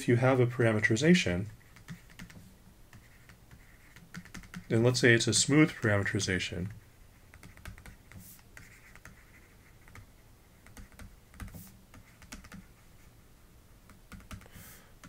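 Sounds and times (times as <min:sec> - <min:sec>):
stylus writing on tablet: 0:00.7 - 0:13.1.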